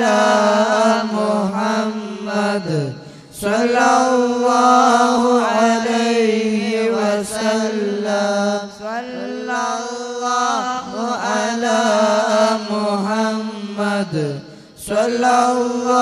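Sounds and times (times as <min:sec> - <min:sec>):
devotional chanting: 0:00.0 - 0:16.0.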